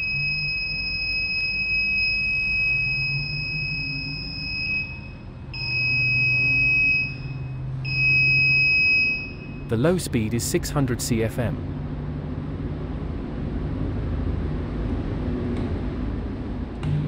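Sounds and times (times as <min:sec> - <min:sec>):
electronic warning buzzer: 0:00.0 - 0:09.7
fan hum: 0:00.0 - 0:17.0.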